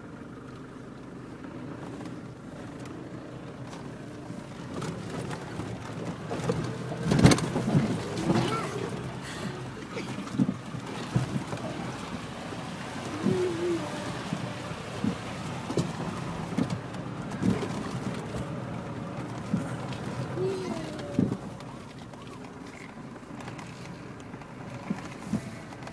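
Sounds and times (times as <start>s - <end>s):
vehicle engine rumble: 0.0s - 25.9s
knocks and jolts from rough ground: 4.6s - 9.0s.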